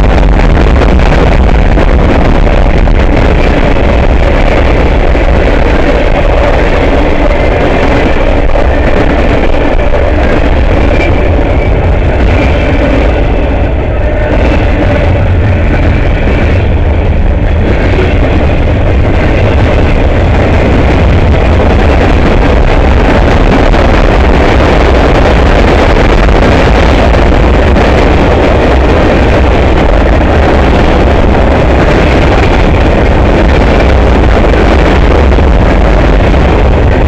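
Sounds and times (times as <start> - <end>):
train wheels rolling on rails: 0.0 - 37.0.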